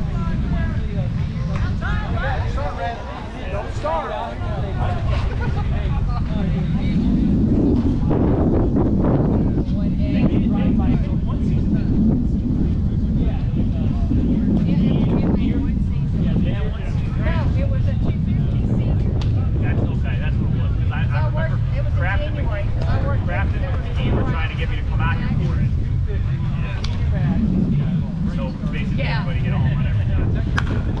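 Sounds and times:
indistinct voices chattering: 0.0 - 31.0
wind buffeting microphone: 0.0 - 31.0.

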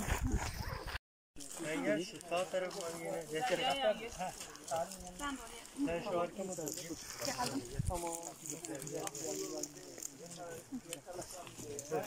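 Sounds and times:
people talking indistinctly: 1.4 - 12.0.

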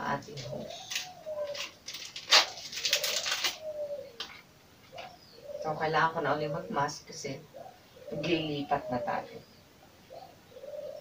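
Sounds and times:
dove cooing: 0.0 - 11.0
plastic packaging crinkling: 0.6 - 3.6
sharp plastic crackle: 0.7 - 3.6.

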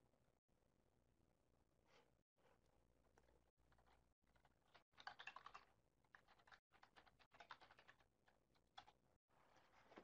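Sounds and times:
typing on computer keyboard: 4.4 - 9.0.

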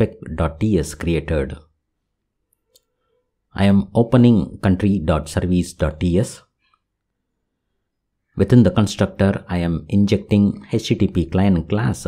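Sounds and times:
person speaking: 0.0 - 1.7, 3.5 - 6.6, 8.3 - 12.0.

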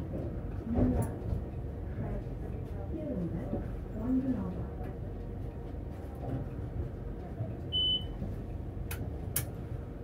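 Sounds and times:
tram low hum: 0.0 - 10.0.

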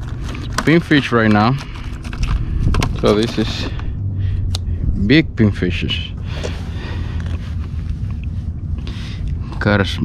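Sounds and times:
wind on microphone: 2.2 - 5.2.

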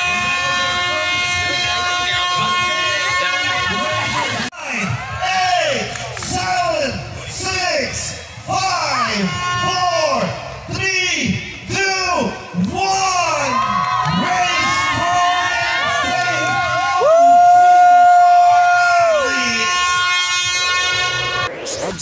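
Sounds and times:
crowd shouting and cheering: 0.0 - 22.0.

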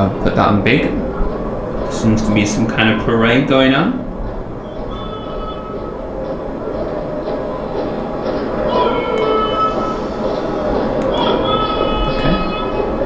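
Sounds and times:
broadcast background noise: 0.0 - 13.0
ceremonial music: 7.8 - 13.0.

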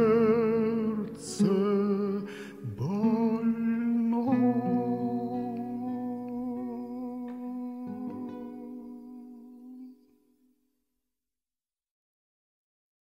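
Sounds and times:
vocal ensemble humming chord: 0.0 - 10.1.

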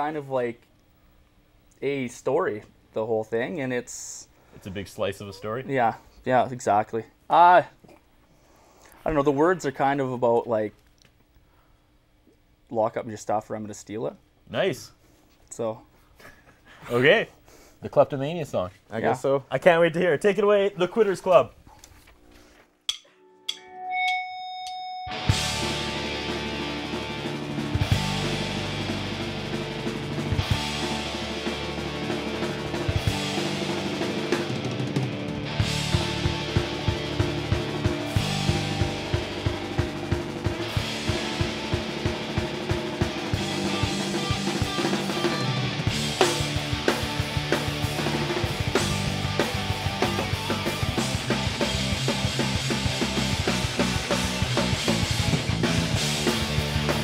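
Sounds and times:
bass guitar: 25.1 - 57.0
drums: 25.1 - 57.0
electric guitar: 25.1 - 57.0.

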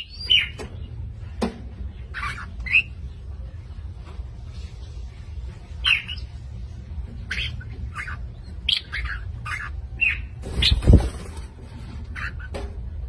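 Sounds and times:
bird harsh squawks: 2.1 - 2.9, 7.3 - 11.0.

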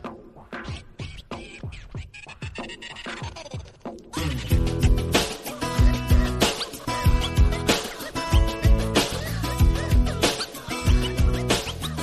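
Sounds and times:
turntable scratching: 0.0 - 12.0.

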